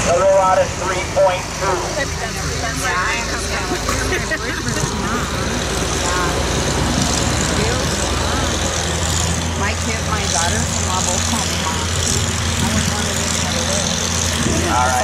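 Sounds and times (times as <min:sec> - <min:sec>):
people talking: 0:00.0 - 0:15.0
tractor engine running under load: 0:00.0 - 0:15.0.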